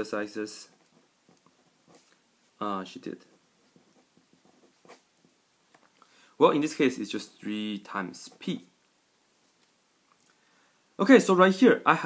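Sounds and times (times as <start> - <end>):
pen scratching on paper: 0.5 - 2.2, 2.9 - 5.4.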